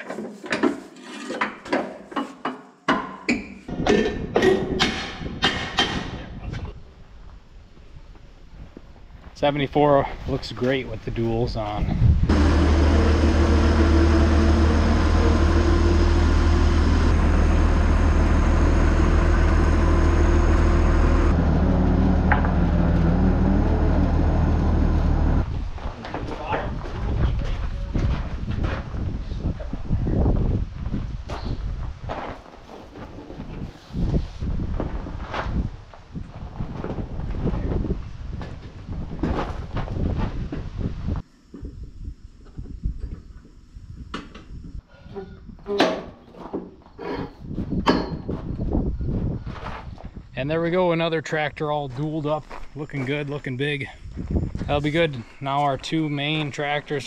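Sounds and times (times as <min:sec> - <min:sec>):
metal clanks and knocks: 0:00.0 - 0:06.3, 0:22.2 - 0:22.8, 0:45.1 - 0:48.5
tractor diesel engine running: 0:12.3 - 0:25.5.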